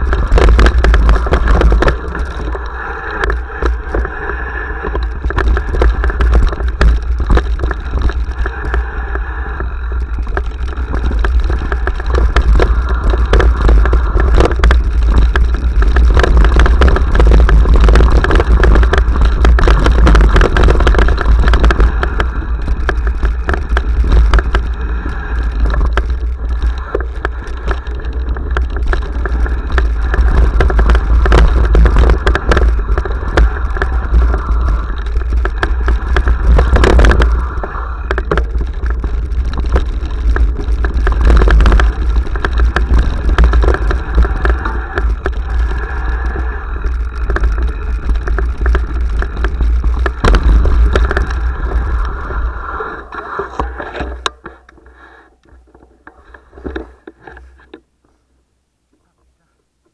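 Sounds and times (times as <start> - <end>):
wind rumble on microphone: 0.0 - 57.8
bike clattering and rattling: 0.0 - 57.9
tyres crunching on dirt: 9.6 - 58.2.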